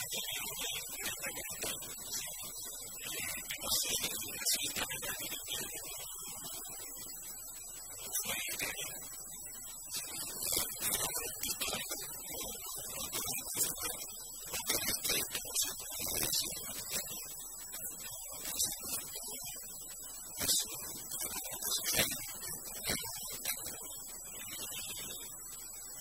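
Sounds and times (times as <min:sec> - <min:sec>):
faint high-pitched whine: 0:00.0 - 0:26.0.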